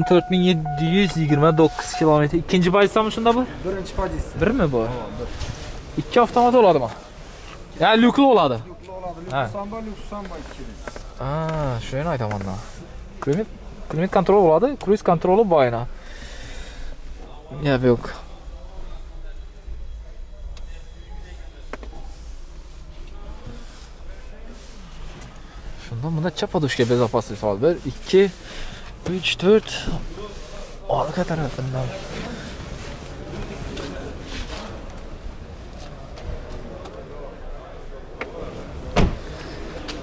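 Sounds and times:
indistinct voices: 0.0s - 6.2s
car door shutting: 38.2s - 40.0s.

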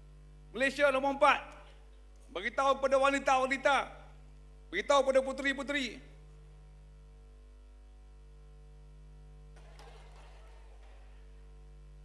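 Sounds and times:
faint electrical hum: 0.0s - 12.0s
audience stirring: 9.6s - 11.4s.

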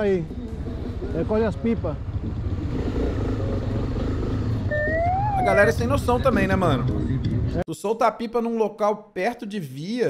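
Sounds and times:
motorcycle engine rumbling: 0.2s - 6.3s
siren rising: 4.7s - 5.9s.

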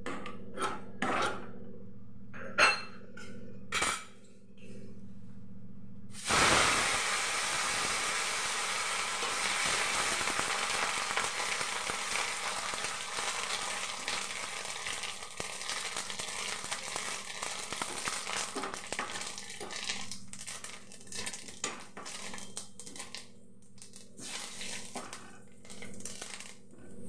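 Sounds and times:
leaves sizzling in hot oil: 6.2s - 23.2s, 23.8s - 26.6s
crackles and pops: 6.3s - 26.7s.

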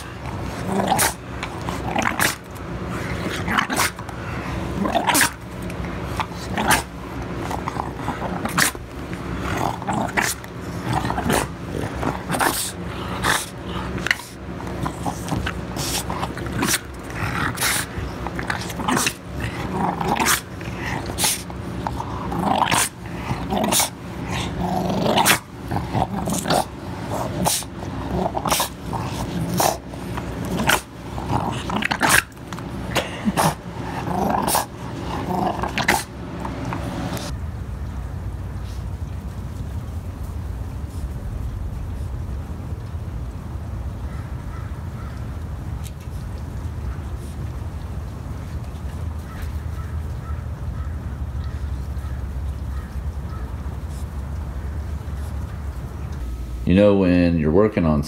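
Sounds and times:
dog growling: 0.0s - 37.3s.

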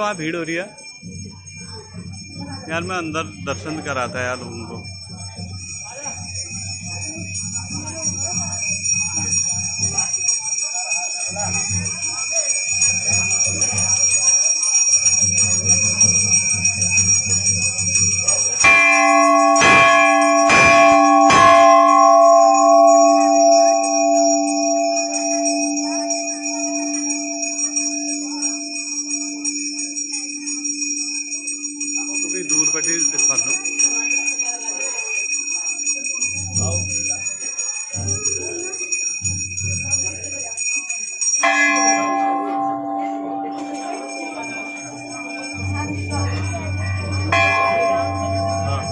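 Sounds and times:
metal bell ringing: 0.0s - 48.9s
lower bell struck: 18.6s - 33.8s, 41.4s - 48.9s.

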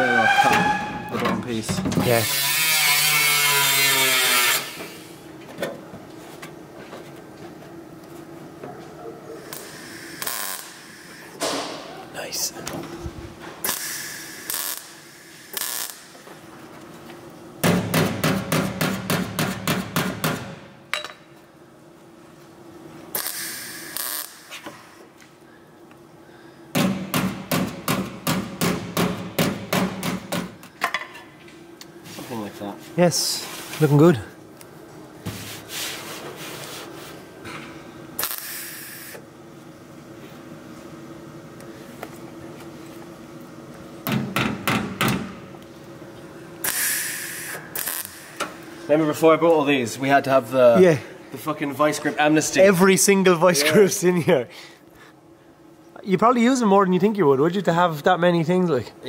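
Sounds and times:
loud steady hiss: 9.4s - 12.6s, 13.6s - 16.3s, 23.1s - 25.1s, 38.2s - 39.3s, 46.6s - 49.1s.

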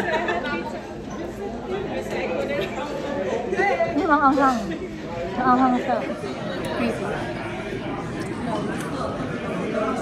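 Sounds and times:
restaurant background chatter: 0.0s - 10.0s.

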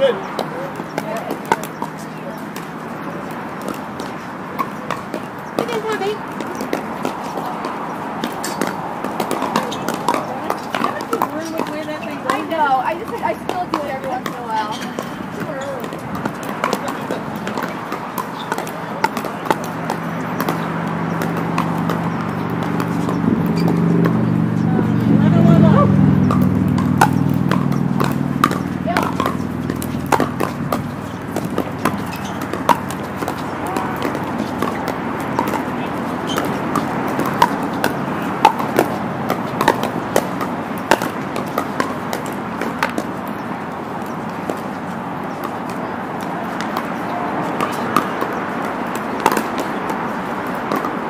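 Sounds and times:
indistinct voices: 0.0s - 51.0s
paddles striking plastic balls: 0.0s - 51.0s.

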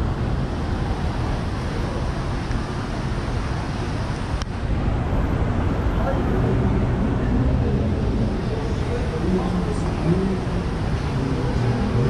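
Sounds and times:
faint voices: 0.0s - 12.0s
rumble of passing cars: 0.0s - 12.0s.

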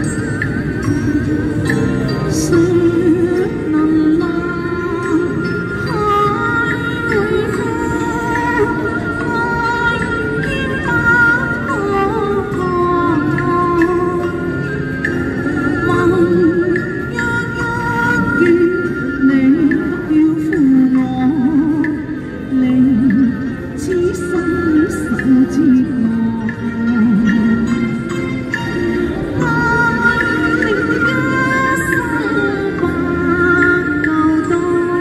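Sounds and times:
woman singing into microphone: 0.0s - 35.0s.

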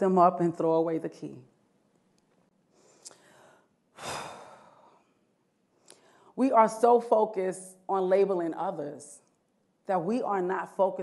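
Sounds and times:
person breathing: 2.7s - 6.4s.

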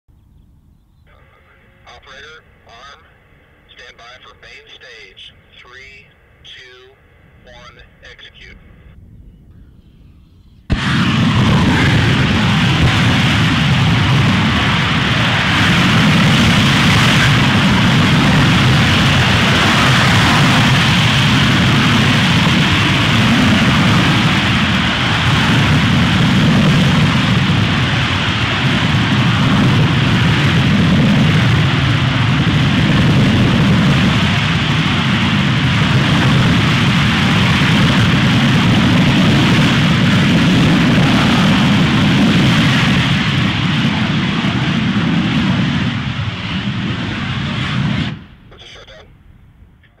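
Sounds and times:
rocket engine rumble: 0.4s - 50.0s.

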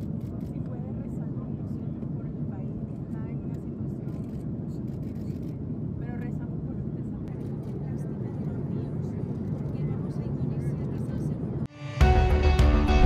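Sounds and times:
airliner cabin drone: 0.0s - 13.0s.

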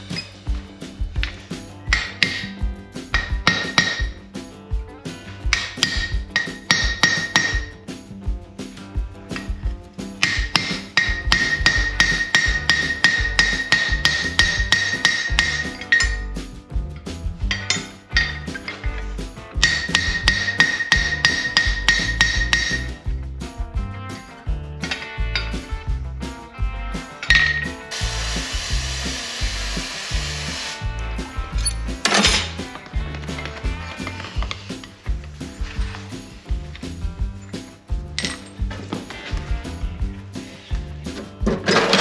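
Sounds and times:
background music: 0.0s - 42.0s
hammer striking metal on anvil: 1.2s - 4.2s, 5.4s - 7.8s, 10.2s - 16.4s, 17.5s - 18.9s, 19.6s - 23.0s, 27.2s - 27.8s.

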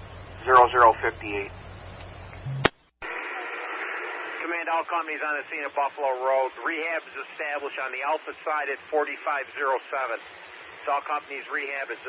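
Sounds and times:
radio static hiss: 0.4s - 1.5s, 2.5s - 12.0s.

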